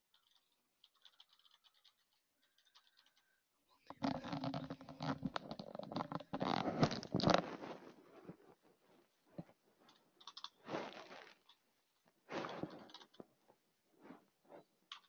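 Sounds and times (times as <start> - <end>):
faint clicks: 0.0 - 4.3
microphone handling scratching: 4.0 - 8.7.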